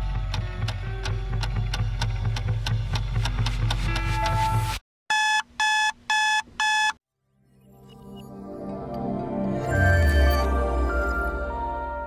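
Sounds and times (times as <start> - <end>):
music: 0.0 - 4.8, 7.2 - 12.0
digital alarm beeps: 5.1 - 7.0
soft music: 7.2 - 12.0.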